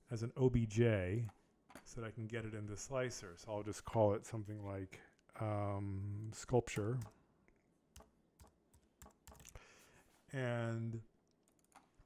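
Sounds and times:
typing on computer keyboard: 0:08.0 - 0:09.6.

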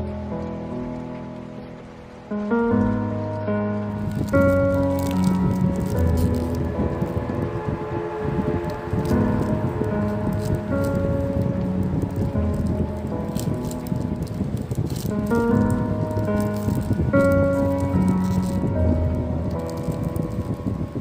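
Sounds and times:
background music: 0:00.0 - 0:21.0
plastic wrapper crinkling: 0:02.8 - 0:21.0.

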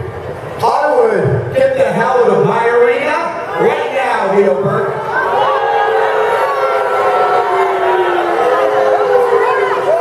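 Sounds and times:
crowd yelling: 0:03.4 - 0:10.0.

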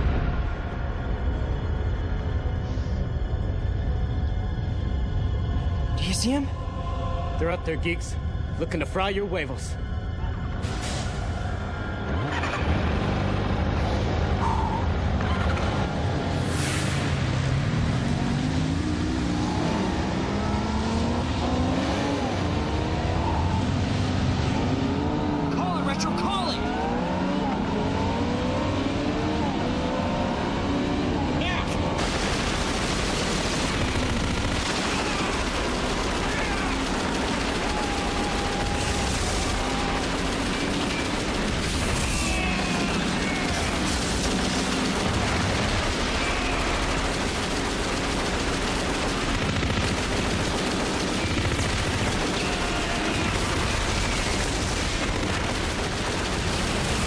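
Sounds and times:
dense gunfire and blasts: 0:31.8 - 0:57.0
people shouting: 0:34.6 - 0:44.7, 0:45.9 - 0:47.4, 0:51.0 - 0:54.4.

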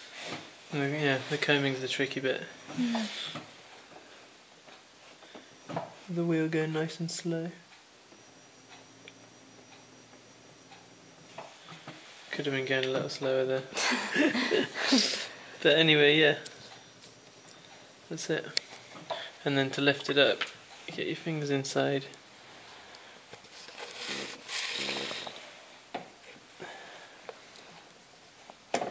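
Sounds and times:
potter's wheel humming: 0:00.0 - 0:28.6.

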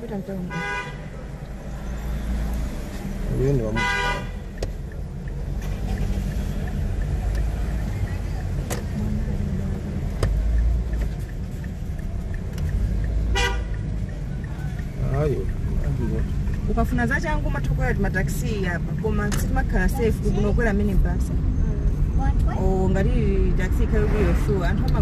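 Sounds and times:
car driving rumble from inside: 0:00.0 - 0:25.0
car horn toots: 0:00.5 - 0:01.1, 0:03.6 - 0:04.6, 0:13.3 - 0:13.8.

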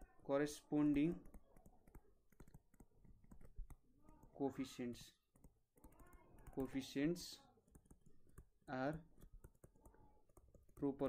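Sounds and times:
stylus tapping on tablet screen: 0:00.0 - 0:11.0.

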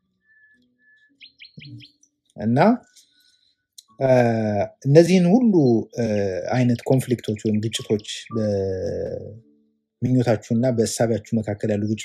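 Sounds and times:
bird chirping: 0:00.0 - 0:10.4.

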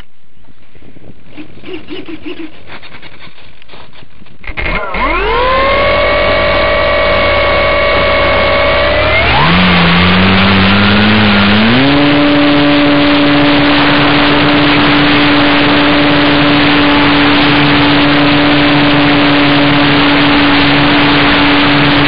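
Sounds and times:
rc plane electric motor: 0:04.5 - 0:22.0
propeller wash and wind: 0:05.4 - 0:22.0.

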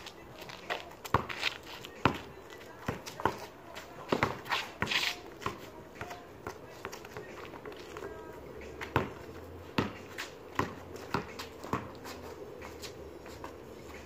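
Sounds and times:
sneaker footsteps scuffing: 0:00.0 - 0:09.2, 0:09.8 - 0:14.0
basketball bouncing on concrete: 0:00.4 - 0:12.0.

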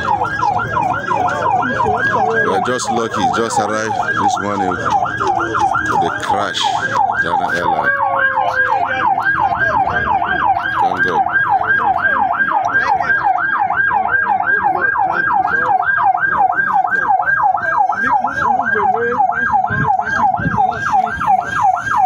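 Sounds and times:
emergency siren fast yelp: 0:00.0 - 0:22.0.

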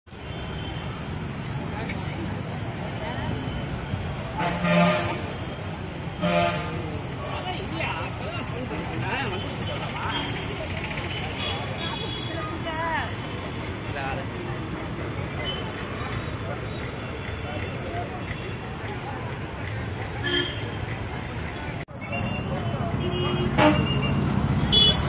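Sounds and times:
busy street traffic: 0:00.0 - 0:25.0
people's voices: 0:01.0 - 0:23.9
vehicle horn honks: 0:22.2 - 0:25.0.

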